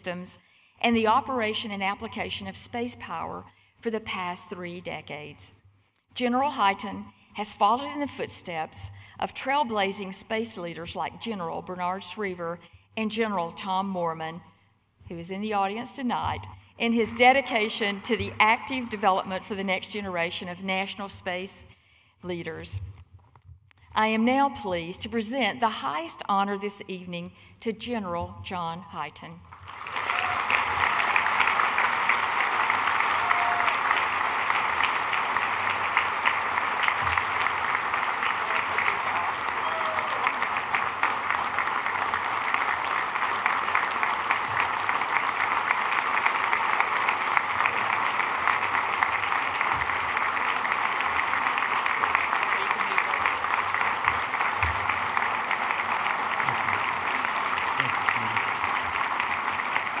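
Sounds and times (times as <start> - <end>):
audience applause: 29.6 - 60.0.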